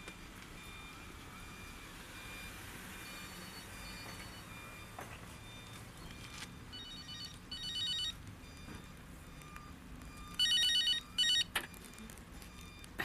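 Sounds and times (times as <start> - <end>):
telephone ringing: 6.2 - 11.9.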